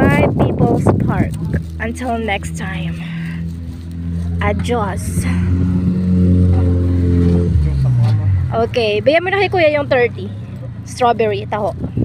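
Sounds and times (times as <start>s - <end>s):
motor vehicle engine running: 0.0s - 12.0s.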